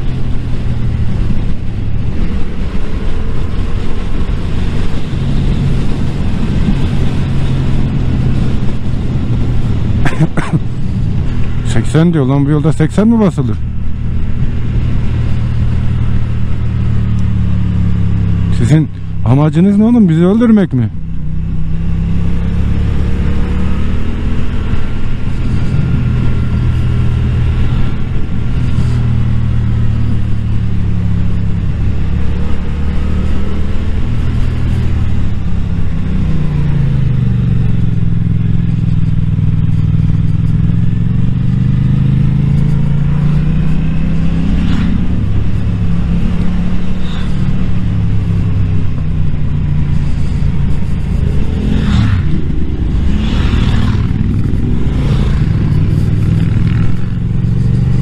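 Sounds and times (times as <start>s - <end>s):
motorcycle engine running: 0.0s - 58.0s.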